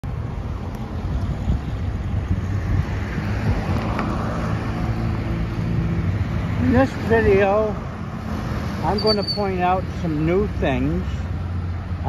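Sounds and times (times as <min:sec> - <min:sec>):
wind rumbling on microphone: 0:00.0 - 0:08.8
cars driving past: 0:00.1 - 0:12.0.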